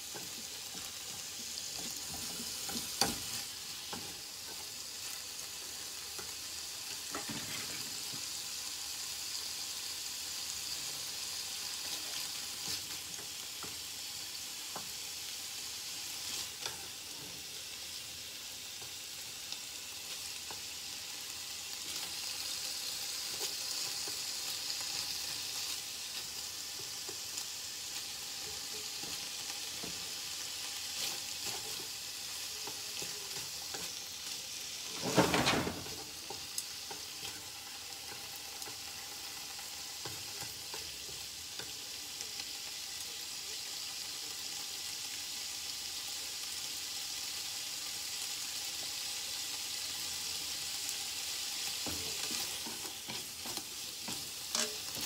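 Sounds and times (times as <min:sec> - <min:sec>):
meat sizzling in oil: 0:00.0 - 0:55.0.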